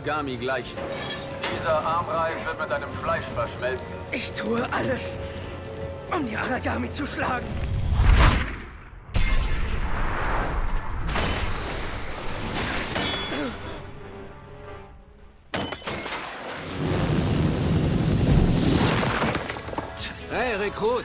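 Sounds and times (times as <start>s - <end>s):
dramatic trailer music: 0.1s - 15.7s.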